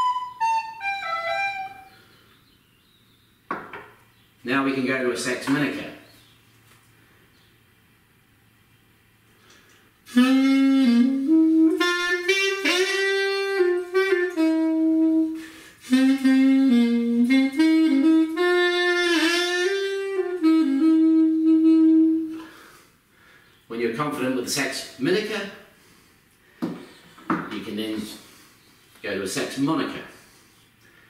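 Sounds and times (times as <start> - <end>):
reed wind instrument melody: 0.0 - 2.1, 10.1 - 22.6.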